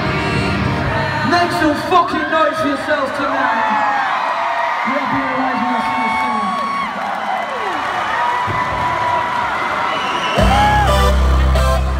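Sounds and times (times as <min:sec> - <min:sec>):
loud bass-heavy music: 0:00.0 - 0:01.6, 0:10.4 - 0:11.9
crowd cheering and whooping: 0:03.2 - 0:11.9.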